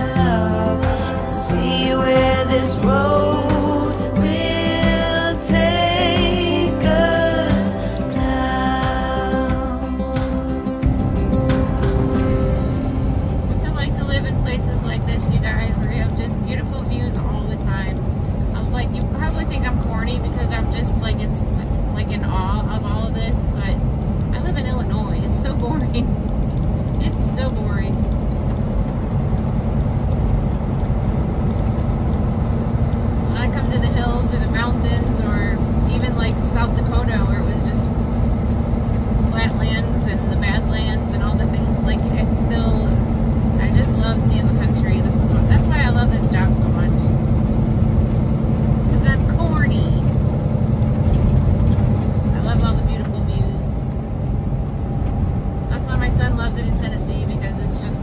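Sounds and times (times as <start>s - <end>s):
road noise: 0.0s - 58.0s
truck engine drone: 0.0s - 58.0s.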